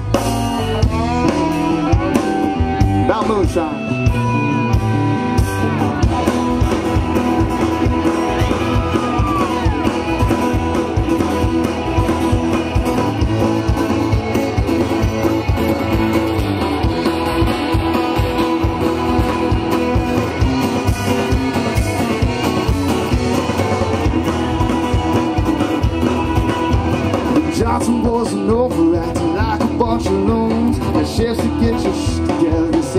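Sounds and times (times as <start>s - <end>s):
electric guitar: 0.0s - 32.9s
live rock band playing: 0.0s - 32.9s
steady drumbeat: 0.0s - 32.9s
fiddle: 4.6s - 32.7s.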